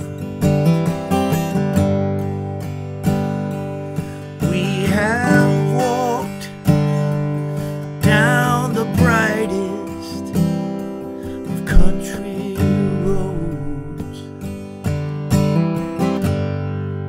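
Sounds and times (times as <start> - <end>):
acoustic guitar strummed chords: 0.0 - 17.0
person singing wavering line: 4.4 - 7.2, 11.4 - 14.3.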